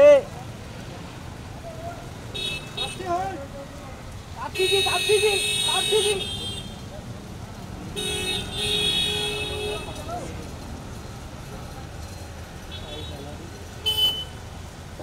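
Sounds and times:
traffic and crowd rumble: 0.0s - 15.0s
vehicle horn blasts: 2.4s - 3.1s, 4.5s - 6.8s, 8.0s - 10.1s, 13.8s - 14.4s.

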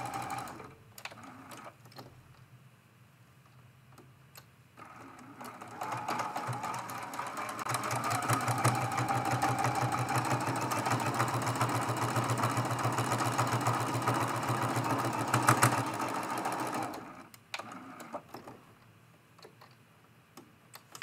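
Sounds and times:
sewing machine stitching: 0.0s - 1.7s, 4.8s - 18.6s.

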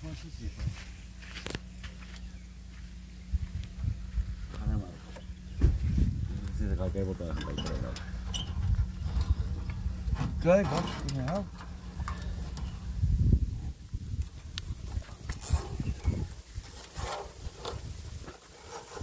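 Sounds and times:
steady low rumble: 0.0s - 16.8s.

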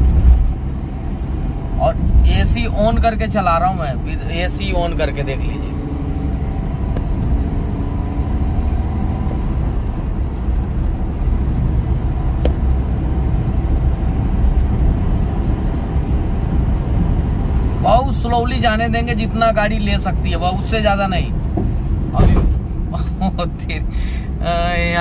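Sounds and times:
car cabin road and engine rumble: 0.0s - 25.0s.

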